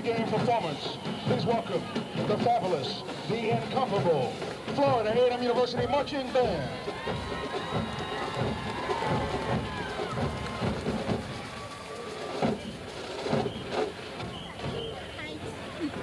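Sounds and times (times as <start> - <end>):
spectators talking and calling out: 0.0 - 16.0.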